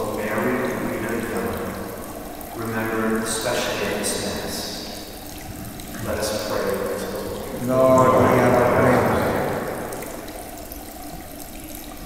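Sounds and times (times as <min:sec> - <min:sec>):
man speaking into a microphone: 0:00.0 - 0:01.7, 0:02.6 - 0:04.8, 0:06.0 - 0:09.6.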